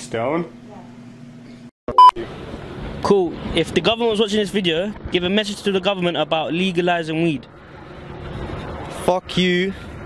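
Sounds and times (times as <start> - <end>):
loud electronic beep: 1.9 - 2.2
outdoor background noise: 2.2 - 10.0.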